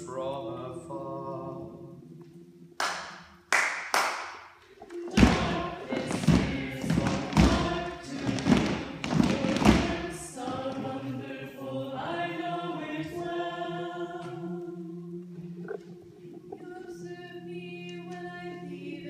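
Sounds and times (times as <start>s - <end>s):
group of voices singing: 0.0s - 2.6s, 4.7s - 19.0s
sharp knocks: 5.1s - 10.0s
heavy thumps: 5.1s - 10.8s.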